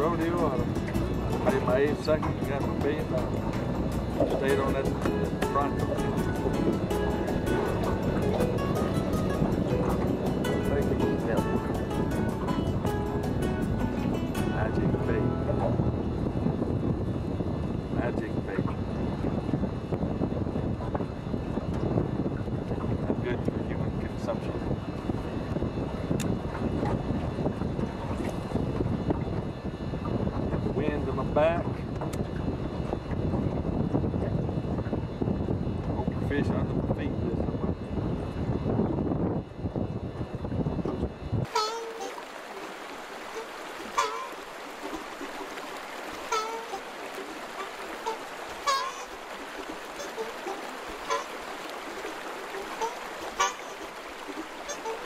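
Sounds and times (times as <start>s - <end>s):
music: 0.0s - 16.8s
wind buffeting microphone: 0.0s - 55.0s.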